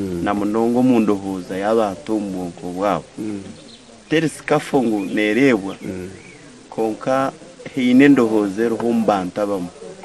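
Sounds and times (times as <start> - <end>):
man speaking: 0.0 - 9.8.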